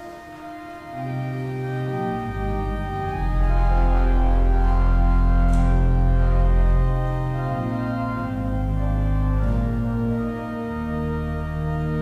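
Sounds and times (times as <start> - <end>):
pipe organ chords: 0.0 - 12.0.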